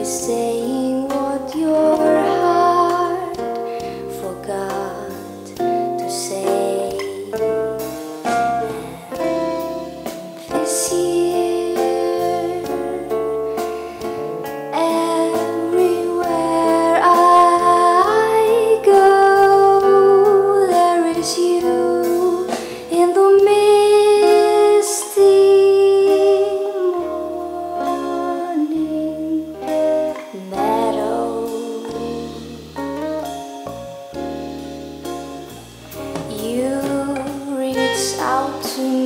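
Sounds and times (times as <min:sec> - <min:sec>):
woman singing: 0:00.0 - 0:33.1, 0:36.2 - 0:39.0
plucked guitar: 0:00.0 - 0:39.0.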